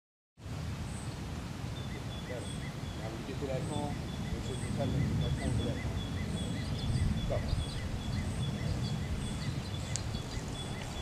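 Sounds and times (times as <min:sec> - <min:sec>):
steady low rumble: 0:00.4 - 0:11.0.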